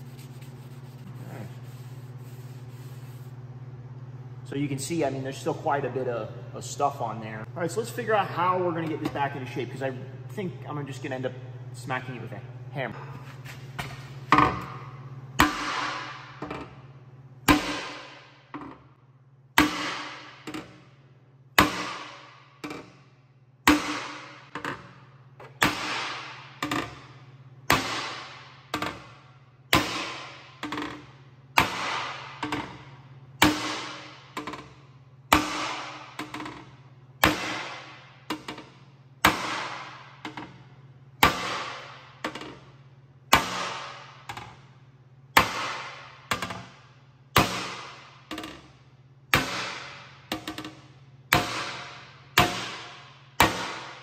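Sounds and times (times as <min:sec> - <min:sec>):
hammer striking hollow metal tank: 0:14.5 - 0:16.6, 0:17.5 - 0:18.5, 0:19.6 - 0:20.8, 0:21.6 - 0:23.0, 0:23.6 - 0:24.6, 0:25.6 - 0:27.1, 0:27.7 - 0:40.6, 0:41.2 - 0:42.7, 0:43.3 - 0:44.6, 0:45.3 - 0:48.7, 0:49.3 - 0:54.0.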